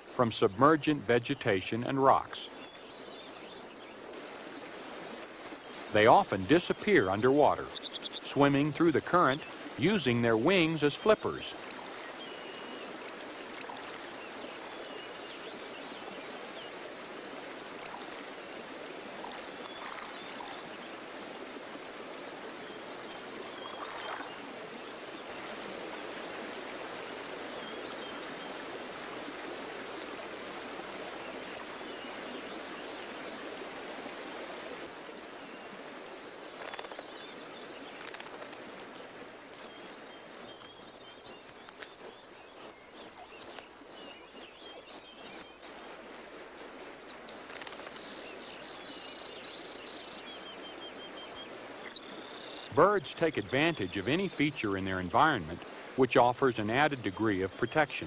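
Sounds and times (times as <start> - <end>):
stream rushing: 0.0 - 36.0, 38.0 - 58.0.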